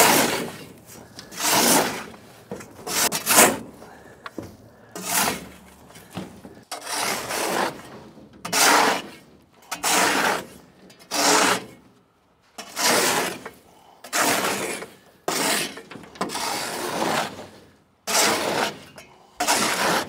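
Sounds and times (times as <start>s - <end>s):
shovel scraping steel floor: 0.0s - 11.9s, 12.5s - 20.0s.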